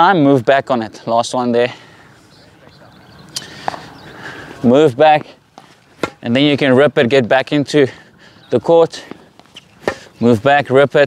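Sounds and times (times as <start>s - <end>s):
faint outdoor ambience: 0.0s - 11.0s
tennis ball pops: 5.6s - 6.2s, 9.8s - 10.1s.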